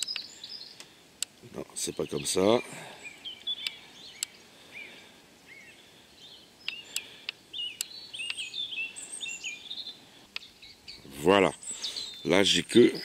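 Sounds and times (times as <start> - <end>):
sharp clicks: 0.0 - 1.4, 3.4 - 4.4, 6.6 - 8.4
small birds chirping: 0.0 - 13.0.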